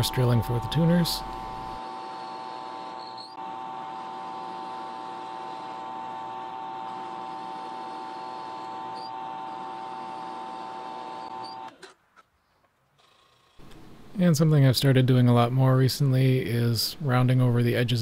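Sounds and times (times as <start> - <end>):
drill press whining: 0.0 - 12.0.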